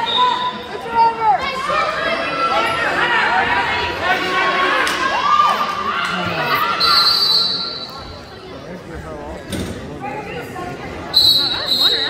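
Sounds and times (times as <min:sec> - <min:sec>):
referee whistle blast: 0:06.8 - 0:07.9, 0:11.2 - 0:12.0.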